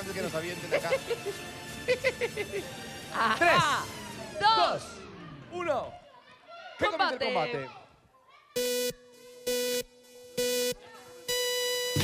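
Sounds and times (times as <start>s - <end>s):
electronic countdown beeps: 8.6s - 12.0s.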